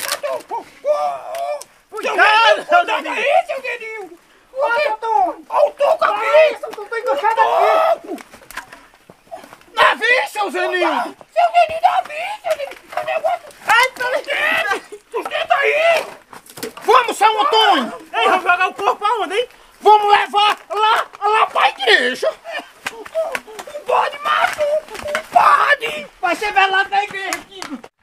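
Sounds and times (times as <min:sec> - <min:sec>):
people talking loudly: 0:00.0 - 0:27.9.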